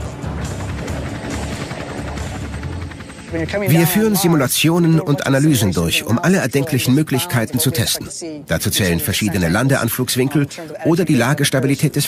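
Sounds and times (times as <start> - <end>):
background music: 0.0 - 12.0
helicopter rotor and engine: 0.0 - 12.0.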